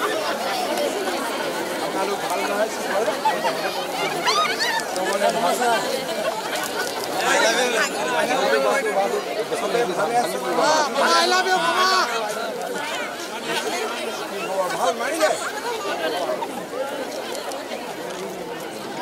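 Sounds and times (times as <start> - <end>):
raised voices: 0.0 - 17.1
crowd babble: 0.0 - 19.0.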